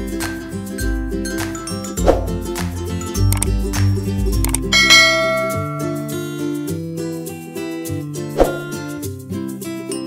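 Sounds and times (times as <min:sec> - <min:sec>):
background music: 0:00.0 - 0:10.0
bright bell chime: 0:04.8 - 0:06.6.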